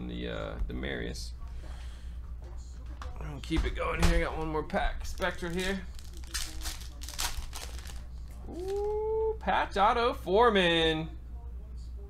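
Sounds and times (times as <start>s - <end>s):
foil wrapper crinkling and tearing: 5.0s - 8.9s.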